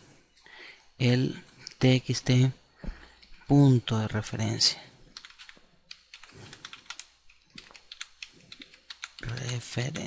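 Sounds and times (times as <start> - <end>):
typing on computer keyboard: 5.1 - 9.8.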